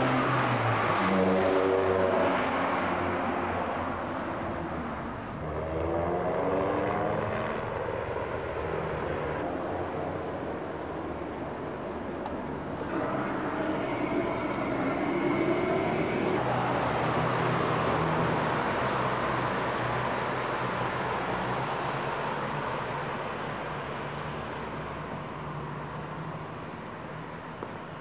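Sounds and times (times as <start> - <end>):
motor vehicle passing: 5.3 - 10.1, 12.8 - 20.7.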